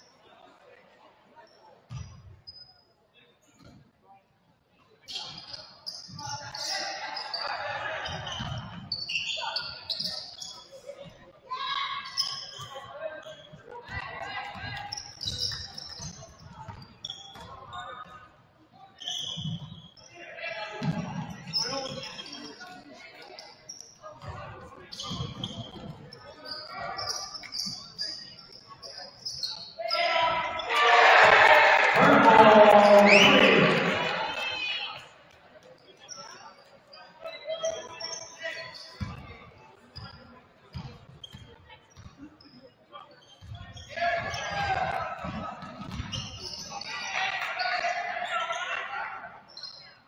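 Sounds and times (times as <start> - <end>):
sneakers squeaking: 1.9 - 2.8, 5.1 - 11.1, 11.8 - 18.2, 19.0 - 20.2, 20.8 - 35.1, 35.7 - 48.9, 49.5 - 50.0
crowd voices: 20.1 - 50.0
players calling out: 29.8 - 35.0.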